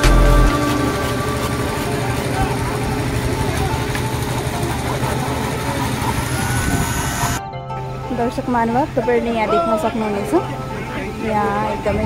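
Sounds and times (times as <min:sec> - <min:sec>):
steady engine: 0:00.0 - 0:07.4
voices talking and calling: 0:00.0 - 0:07.4.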